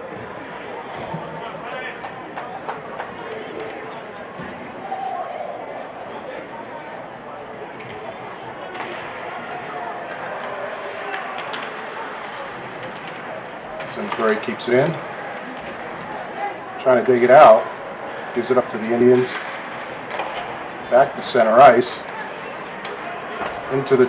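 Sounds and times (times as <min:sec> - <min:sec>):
crowd chatter: 0:00.0 - 0:24.0
players' voices: 0:00.0 - 0:24.0
hockey sticks and puck clacking: 0:07.7 - 0:24.0.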